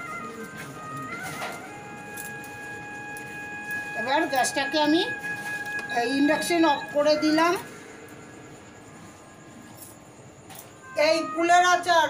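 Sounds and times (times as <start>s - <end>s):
steady high-pitched tone: 0.0s - 11.4s.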